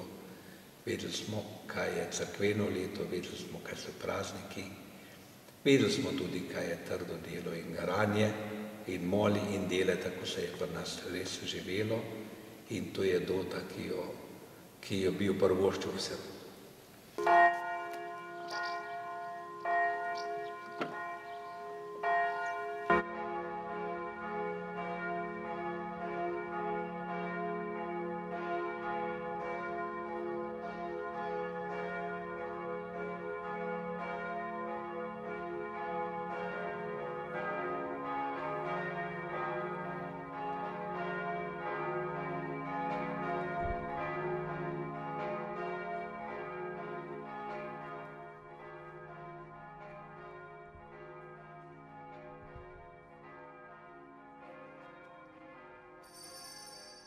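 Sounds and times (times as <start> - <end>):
church bells pealing: 0.0 - 0.3, 1.0 - 4.7, 5.7 - 16.3, 17.2 - 57.0
low bell ringing: 17.2 - 23.0, 56.0 - 57.0
single church bell struck: 17.2 - 57.0.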